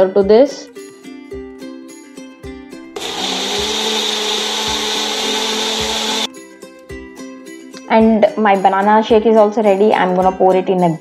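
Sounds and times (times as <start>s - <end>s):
plucked background music: 0.0s - 11.0s
electric mixer grinder running: 3.0s - 6.3s.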